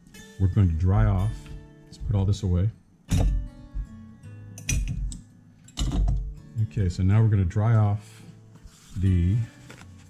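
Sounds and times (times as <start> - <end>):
background music: 0.0 - 10.0
tools clicking and knocking: 4.6 - 5.2, 5.8 - 6.3.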